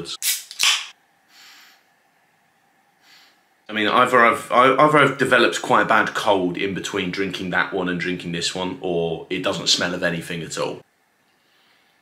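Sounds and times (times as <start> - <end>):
can snapped open with hiss: 0.2 - 0.9.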